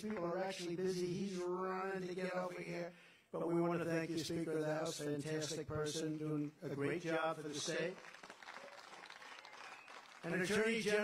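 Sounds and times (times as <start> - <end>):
faint crowd clapping: 7.5 - 11.0.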